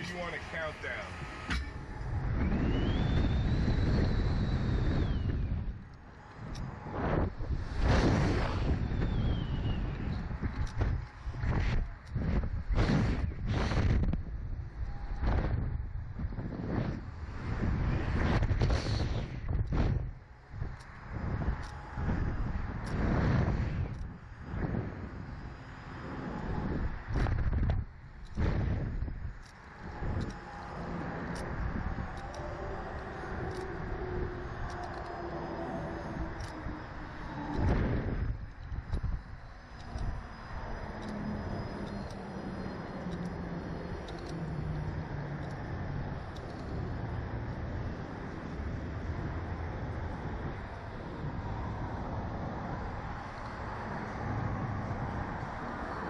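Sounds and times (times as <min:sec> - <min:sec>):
air rushing over microphone: 0:00.0 - 0:56.0.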